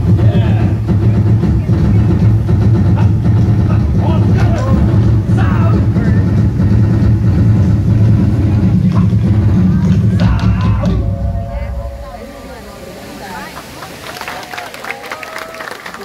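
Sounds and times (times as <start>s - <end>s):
loud dense drumming: 0.0s - 13.3s
voices calling out: 8.3s - 16.0s.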